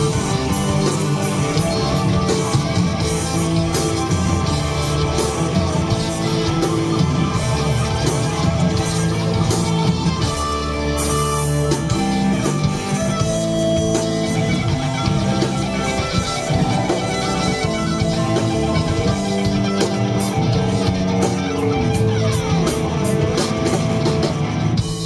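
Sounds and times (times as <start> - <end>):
bass guitar: 0.0 - 25.0
drums and cymbals: 0.0 - 25.0
electric guitar: 0.0 - 25.0.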